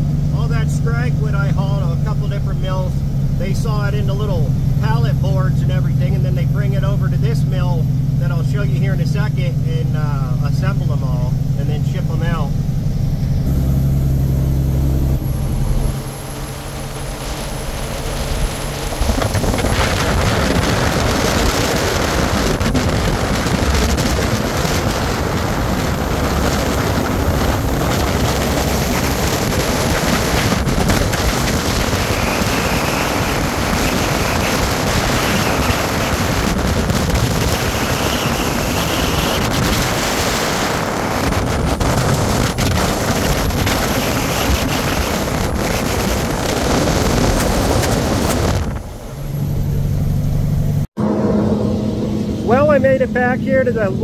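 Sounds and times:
truck engine and tyre noise: 0:00.0 - 0:54.0.

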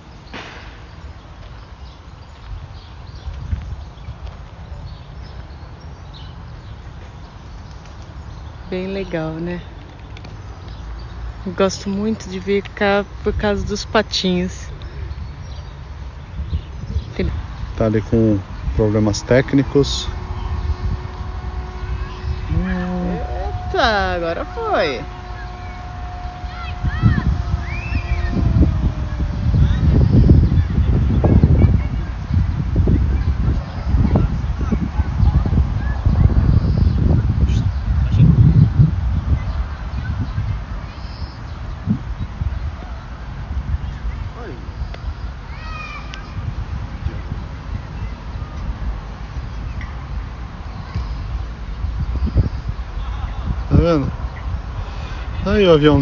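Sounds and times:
wind buffeting microphone: 0:00.0 - 0:56.0
low rumble: 0:06.2 - 0:45.3
high falling call: 0:18.0 - 0:32.2
model airplane motor hum: 0:18.5 - 0:31.3
short falling call: 0:20.1 - 0:30.0.

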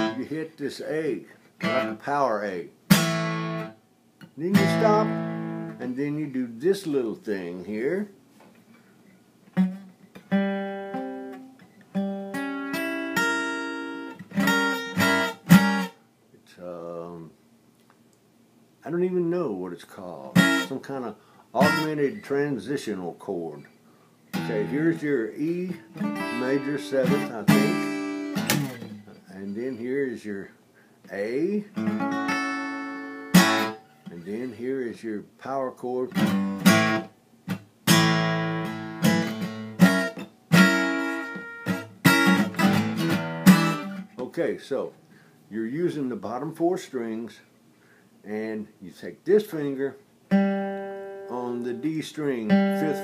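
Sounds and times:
acoustic guitar strumming chords: 0:00.0 - 0:00.5, 0:01.6 - 0:02.2, 0:02.9 - 0:06.0, 0:09.5 - 0:16.0, 0:20.3 - 0:21.0, 0:21.6 - 0:22.3, 0:24.3 - 0:30.0, 0:31.7 - 0:34.6, 0:36.1 - 0:44.3, 0:50.3 - 0:53.0.

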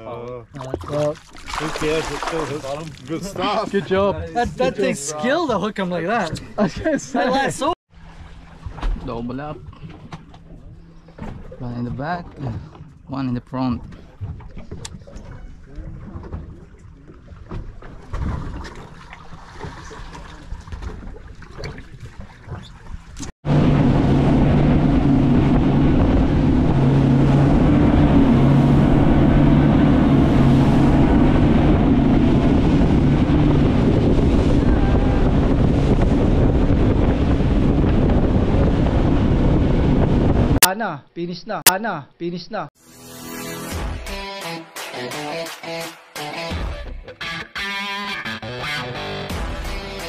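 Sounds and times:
water spray from wake: 0:00.9 - 0:03.2
boat engines droning: 0:01.8 - 0:17.9, 0:22.0 - 0:40.6
wind buffeting microphone: 0:20.6 - 0:40.6
rushing wind: 0:23.4 - 0:40.6.

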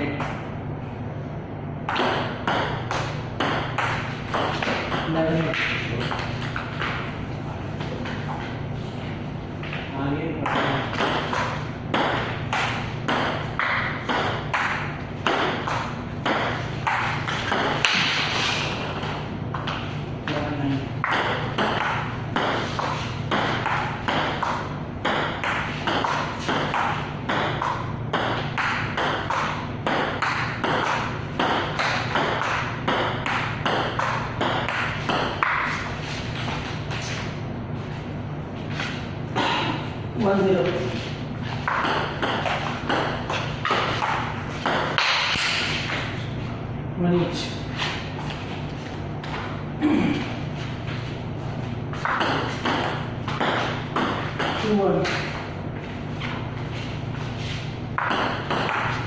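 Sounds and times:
table tennis balls clicking: 0:21.0 - 0:37.0.

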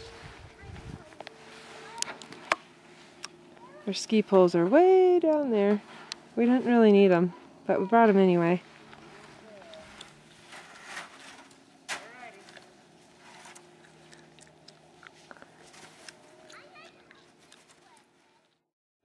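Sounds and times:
distant adult and child talking: 0:00.2 - 0:02.4, 0:03.5 - 0:04.0, 0:09.0 - 0:10.0, 0:15.9 - 0:18.6.

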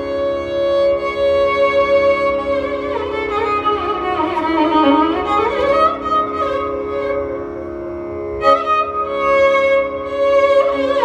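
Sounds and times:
tanpura drone: 0:00.0 - 0:11.0
violin playing sliding phrases: 0:00.0 - 0:11.0.

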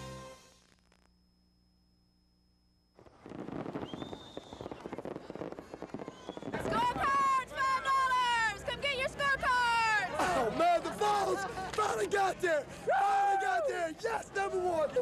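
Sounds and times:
fireworks crackling and popping: 0:02.9 - 0:08.0.

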